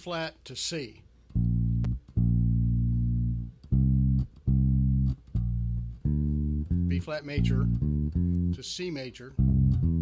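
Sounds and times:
electric bass guitar notes: 0:01.3 - 0:10.0.

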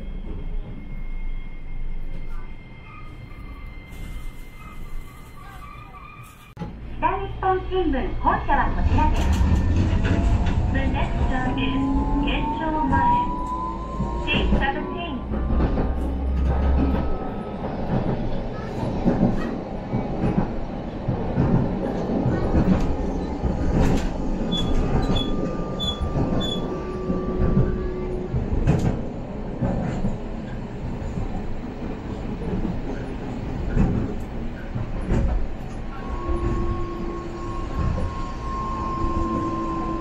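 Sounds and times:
tram rolling rumble: 0:00.0 - 0:40.0.

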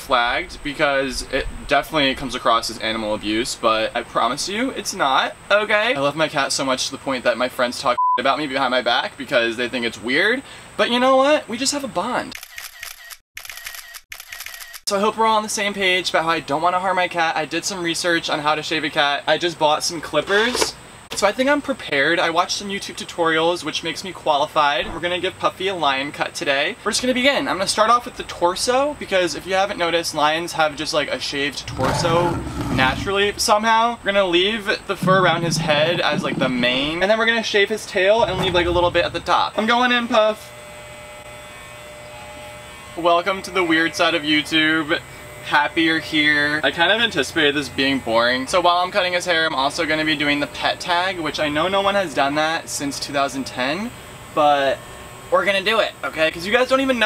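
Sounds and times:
rapid camera shutter clicking: 0:12.3 - 0:14.9
electric hair clippers buzzing: 0:39.6 - 0:46.6, 0:51.7 - 0:55.7.

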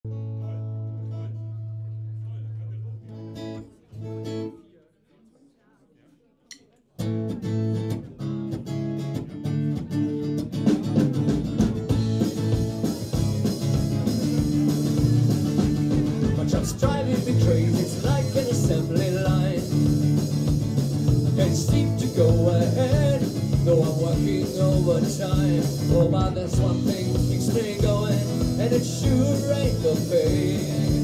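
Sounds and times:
strummed acoustic guitar: 0:07.0 - 0:31.0
electric guitar: 0:07.1 - 0:31.0
drums: 0:07.3 - 0:31.0
rock band chords: 0:09.7 - 0:31.0.

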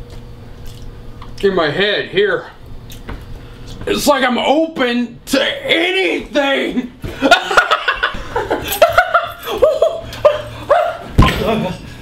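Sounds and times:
man laughing wildly: 0:07.1 - 0:11.1.

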